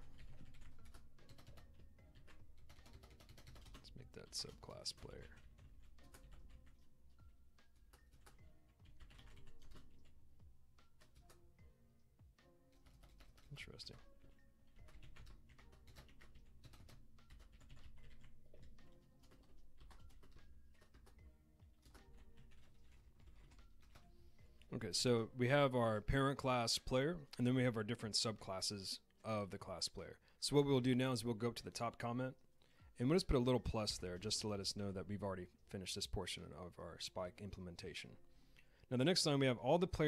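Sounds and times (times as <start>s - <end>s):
typing on computer keyboard: 0.0s - 6.9s, 7.6s - 10.2s, 10.8s - 11.4s, 12.7s - 24.1s.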